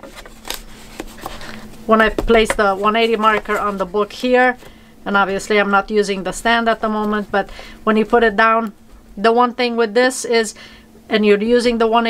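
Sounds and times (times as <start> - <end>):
paper pages rustling: 0.0 - 4.8.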